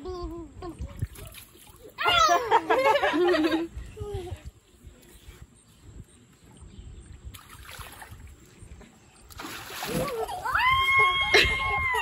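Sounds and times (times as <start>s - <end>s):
pool water splashing: 7.3s - 11.7s.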